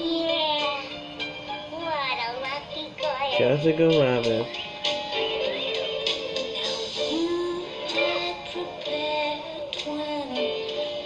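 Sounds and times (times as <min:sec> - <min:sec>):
person singing long notes: 0:07.0 - 0:10.3.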